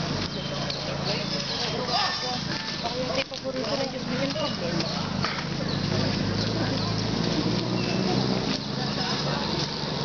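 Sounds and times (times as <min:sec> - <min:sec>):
indistinct voices of people: 0:00.0 - 0:10.0.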